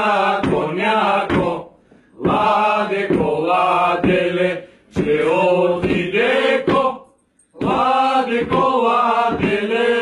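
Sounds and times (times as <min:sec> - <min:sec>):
men singing a carol together: 0:00.0 - 0:10.0.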